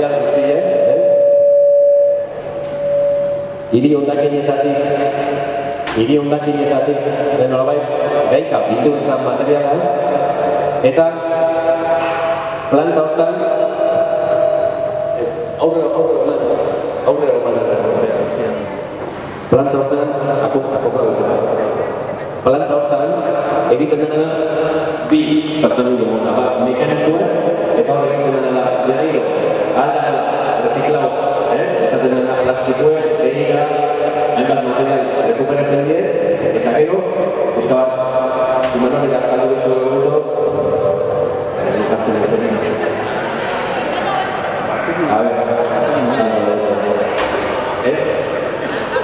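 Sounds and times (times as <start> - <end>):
audio feedback ringing tone: 0.0 - 9.4, 10.0 - 17.9, 20.7 - 23.8.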